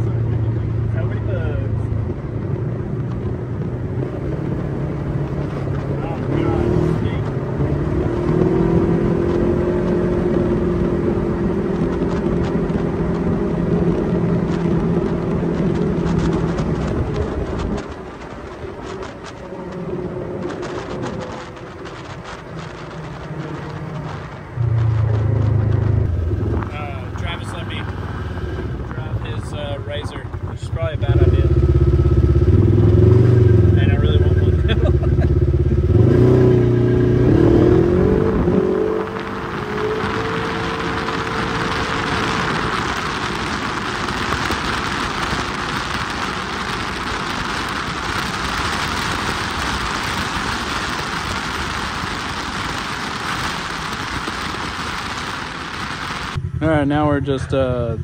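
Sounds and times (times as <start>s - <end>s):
vehicle engine revving: 0.0s - 58.0s
wind and road noise: 0.0s - 58.0s.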